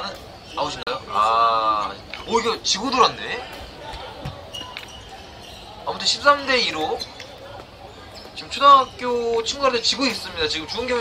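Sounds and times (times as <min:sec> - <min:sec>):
sports hall background noise: 0:00.0 - 0:11.0.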